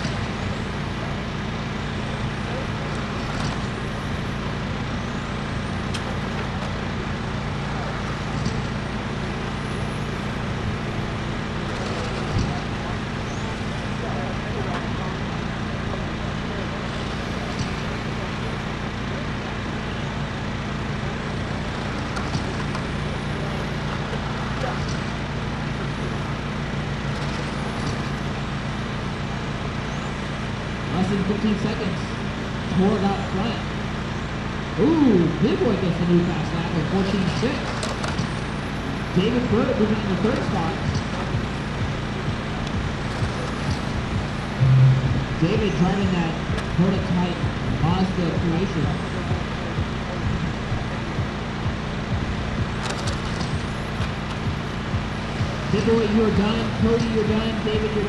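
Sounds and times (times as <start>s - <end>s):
steady low hum: 40.0s - 58.0s.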